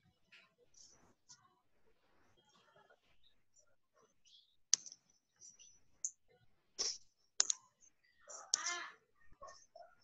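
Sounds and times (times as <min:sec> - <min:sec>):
sharp clicks: 0:06.8 - 0:07.7.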